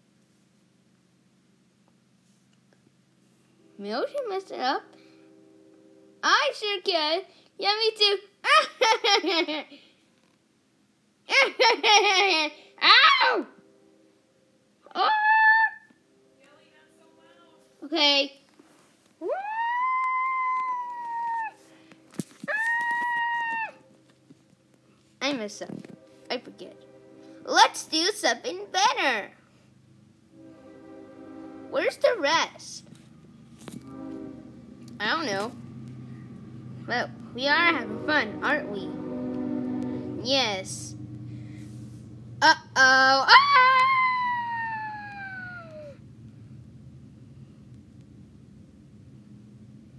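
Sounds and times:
faint low hum: 0.0 - 49.9
high-pitched wordless wails: 12.8 - 13.6, 14.8 - 16.0, 19.2 - 21.7, 22.4 - 23.9, 34.4 - 41.0, 42.4 - 46.0
child crying ah: 14.9 - 15.9, 19.2 - 21.6, 22.5 - 23.8, 42.5 - 46.0.

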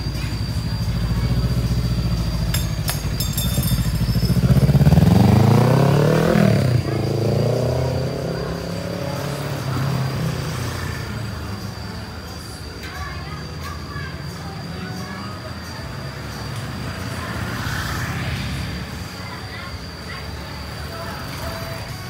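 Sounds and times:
motorcycle engine idling and revving: 0.0 - 22.0.

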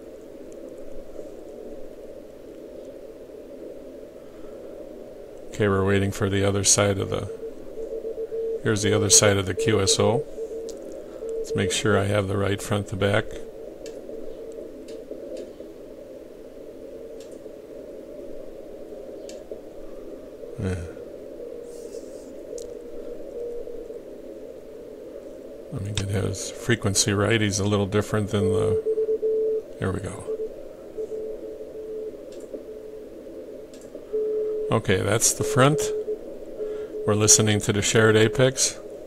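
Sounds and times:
muffled radio band noise hiss: 0.0 - 39.0
faint clicks: 0.2 - 1.6, 10.5 - 11.6, 13.4 - 15.7, 17.1 - 17.5, 19.2 - 19.6, 22.5 - 24.0, 25.9 - 26.1, 32.2 - 32.7, 33.6 - 34.6
weak morse code signal: 5.5 - 15.4, 25.7 - 39.0.

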